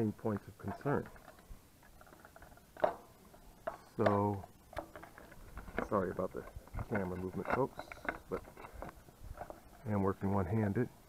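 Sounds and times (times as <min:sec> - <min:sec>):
person speaking: 0:00.0 - 0:01.3, 0:03.7 - 0:11.0
plastic and metal parts clicking: 0:00.3 - 0:10.0.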